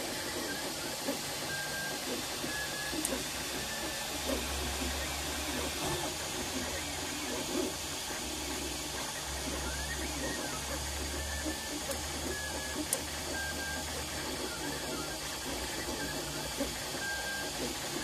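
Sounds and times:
stepper motors whining in changing tones: 0.1 - 18.0.

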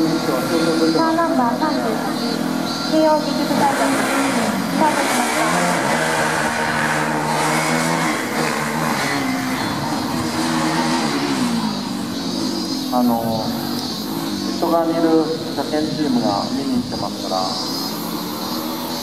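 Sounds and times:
race car engine revving: 0.0 - 19.0.

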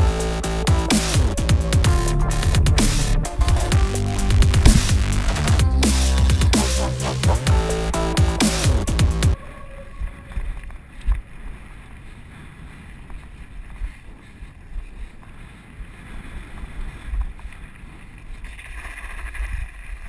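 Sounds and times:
tyres rumbling on gravel: 0.0 - 9.3
gravel hiss: 10.3 - 20.0.

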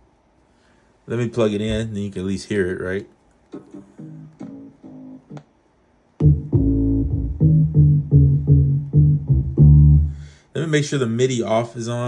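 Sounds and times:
plucked bass notes: 3.8 - 5.4, 6.2 - 10.3.

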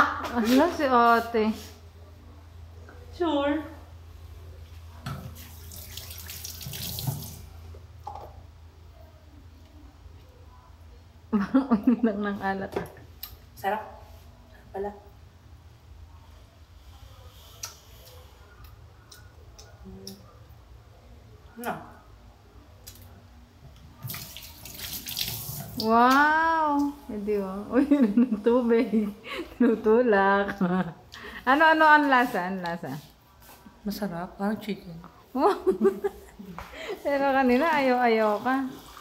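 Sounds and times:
water running into a sink: 5.2 - 7.6, 24.0 - 25.9.

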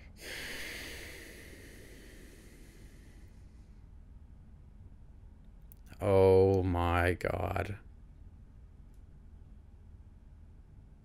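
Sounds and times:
man breathing out through nose: 0.0 - 3.6.

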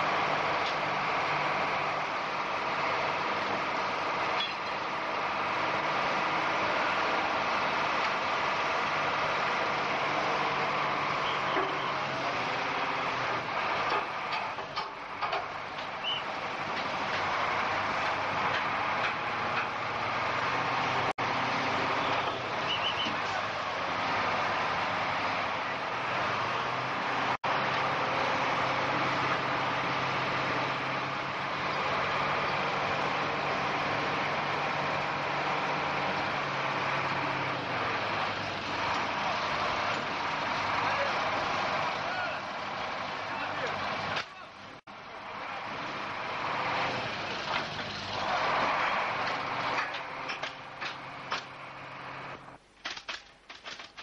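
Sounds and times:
heavy vehicle engines running: 0.0 - 54.0.

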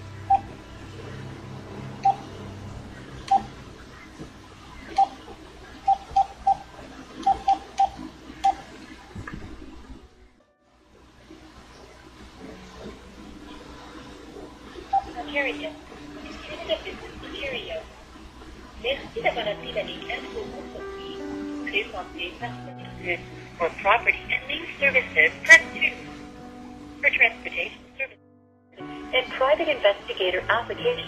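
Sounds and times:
phone keypad beeps: 5.8 - 6.6, 7.2 - 8.6.

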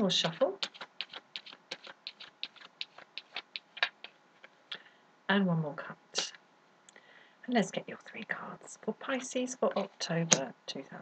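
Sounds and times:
cards being shuffled: 0.0 - 4.8.

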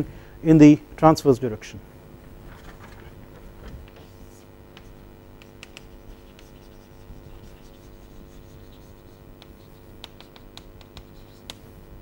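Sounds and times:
faint room hum: 0.0 - 12.0
chalk tapping and scratching: 3.8 - 11.8.

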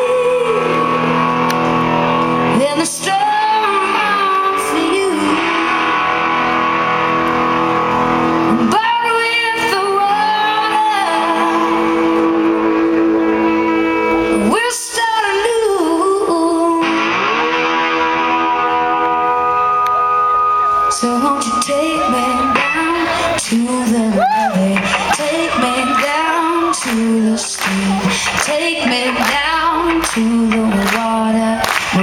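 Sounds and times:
electric guitar lead notes bending: 0.0 - 32.0
live rock band playing: 0.0 - 32.0.

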